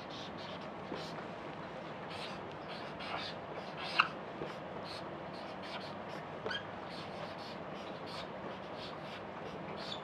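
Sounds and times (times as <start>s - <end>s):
marker pen scratching whiteboard: 2.1s - 10.0s.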